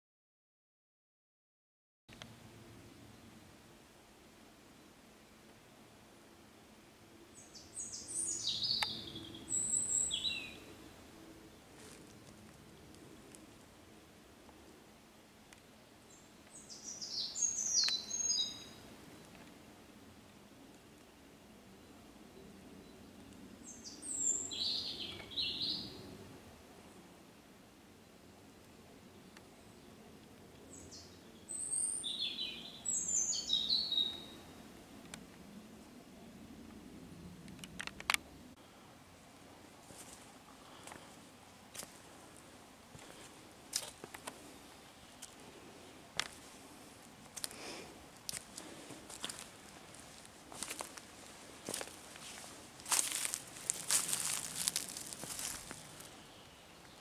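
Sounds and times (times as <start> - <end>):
songbird singing: 4.6 - 13.8, 14.4 - 38.8, 39.9 - 57.0.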